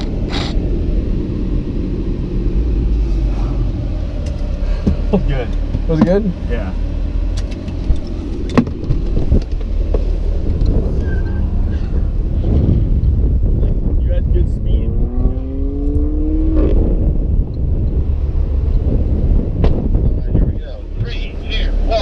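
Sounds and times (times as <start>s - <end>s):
car engine accelerating: 0.0s - 22.0s
steady low rumble: 0.0s - 22.0s.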